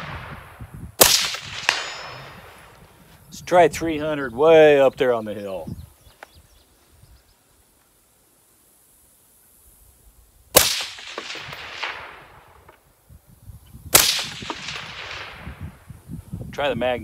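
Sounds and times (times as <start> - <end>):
rifle shots with rolling echo: 0.0 - 2.8, 10.5 - 12.7, 13.9 - 15.8.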